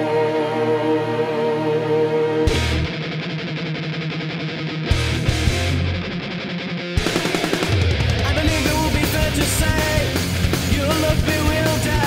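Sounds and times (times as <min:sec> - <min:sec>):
metal band playing: 0:00.0 - 0:12.0.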